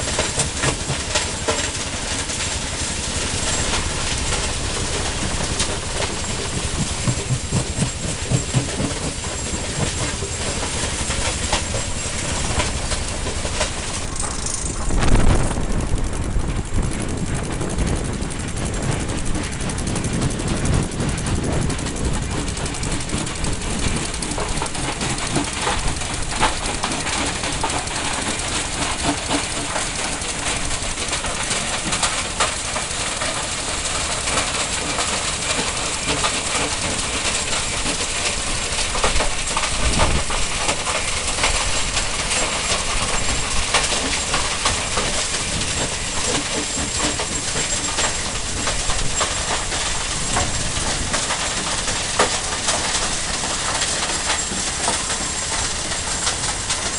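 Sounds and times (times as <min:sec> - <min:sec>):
rock crusher grinding stone: 0:00.0 - 0:56.9.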